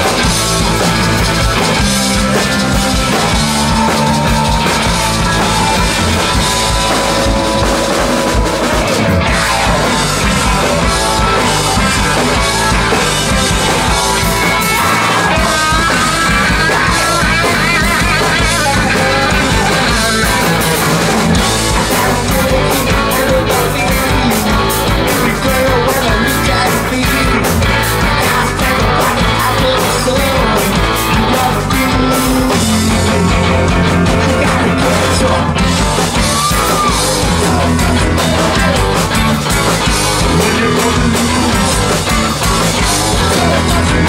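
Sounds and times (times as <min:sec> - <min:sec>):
garage rock band playing live: 0:00.0 - 0:44.0
person singing: 0:01.6 - 0:44.0.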